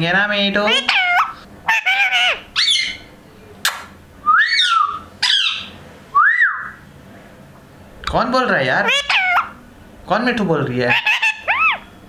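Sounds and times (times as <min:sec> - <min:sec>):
parrot whistled calls: 0:00.7 - 0:03.1, 0:03.7 - 0:06.8, 0:08.8 - 0:09.6, 0:10.9 - 0:12.0
sharp click: 0:03.6 - 0:04.0.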